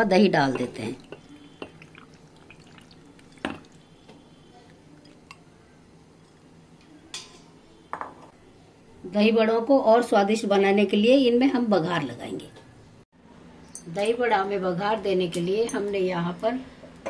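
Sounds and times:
thick curd pouring: 0:01.8 - 0:04.0.

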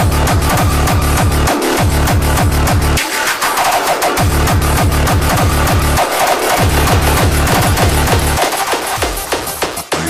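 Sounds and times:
synth and percussion: 0:03.0 - 0:09.8
distorted kick drum: 0:04.8 - 0:09.6.

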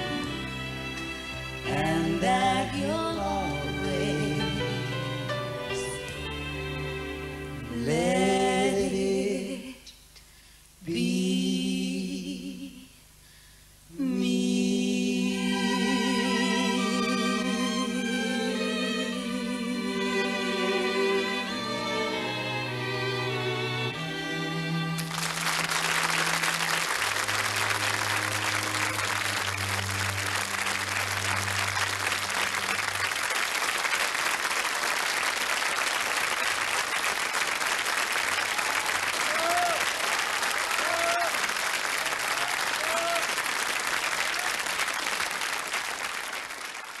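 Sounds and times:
audience applauding: 0:25.0 - 0:47.0.

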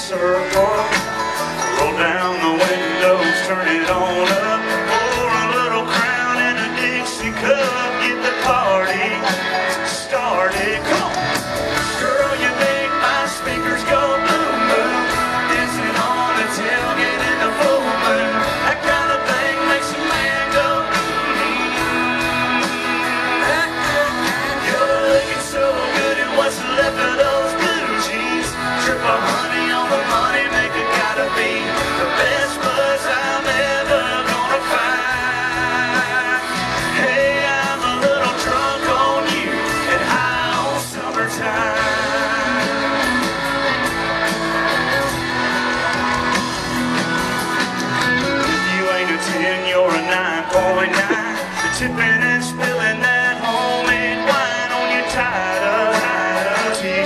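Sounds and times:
man singing lead vocal: 0:00.0 - 0:43.8, 0:45.1 - 0:57.0
guitars: 0:00.0 - 0:57.0
live country band playing: 0:00.0 - 0:57.0.

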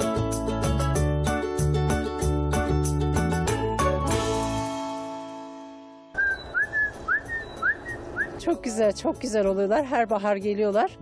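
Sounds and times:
outdoor background noise: 0:06.1 - 0:10.3
small bird whistling calls: 0:06.2 - 0:08.4.

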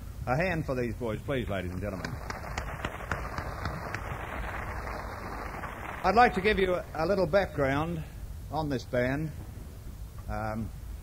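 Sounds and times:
audience applauding: 0:01.8 - 0:06.7.

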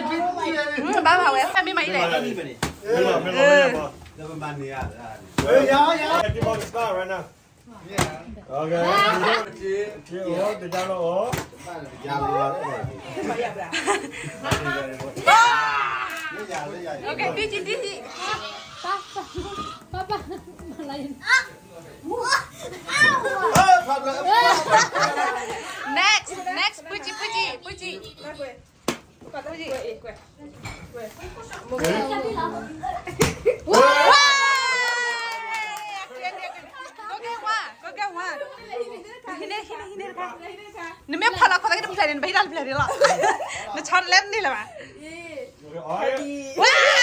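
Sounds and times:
children and adults chattering: 0:00.0 - 0:04.6, 0:07.8 - 0:33.8, 0:35.8 - 0:47.0.

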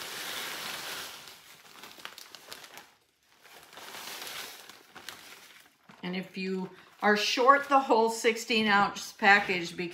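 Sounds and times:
plastic bag crinkling: 0:00.0 - 0:08.2.

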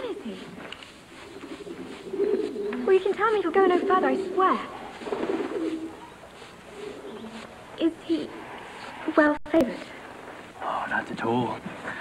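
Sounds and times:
bird cooing: 0:01.2 - 0:08.4.

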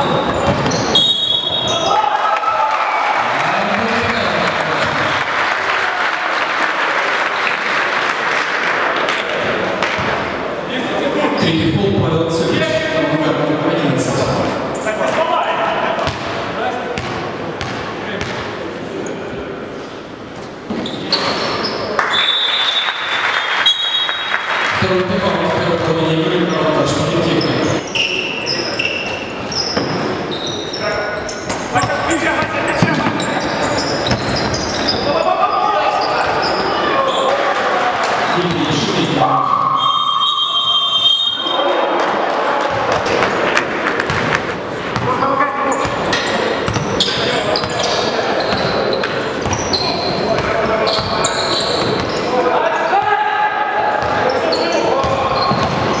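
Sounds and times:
voices in a hall: 0:00.0 - 0:56.0.

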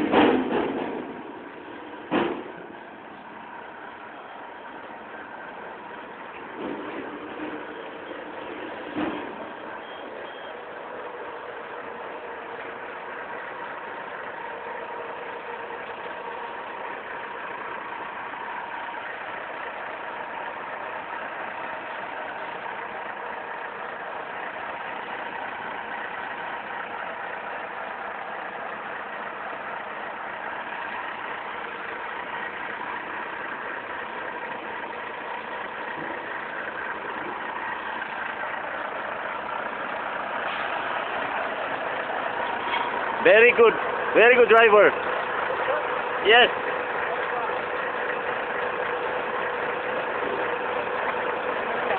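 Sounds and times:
truck engine idling: 0:00.0 - 0:51.9.

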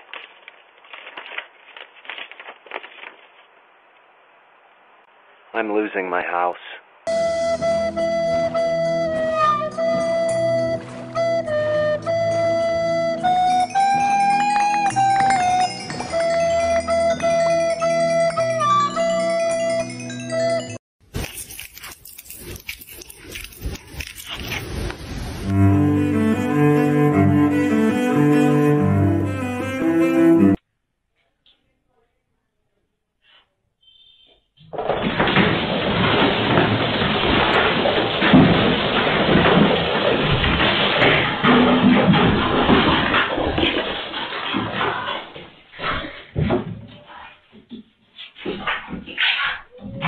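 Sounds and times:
paper envelope tearing: 0:00.0 - 0:03.5, 0:21.1 - 0:25.5.

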